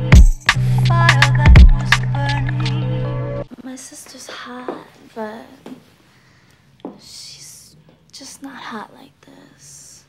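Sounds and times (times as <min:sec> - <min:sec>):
person whispering: 0:07.0 - 0:10.0.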